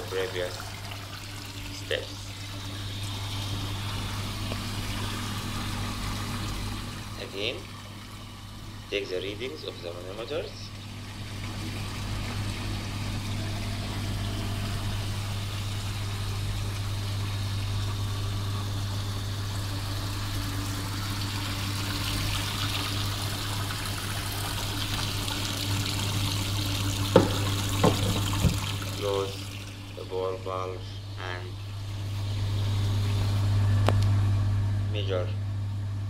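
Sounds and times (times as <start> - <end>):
water pouring from hose into tank: 0.0 - 30.9
pump humming: 0.0 - 36.0
sharp knocks: 27.2 - 28.7.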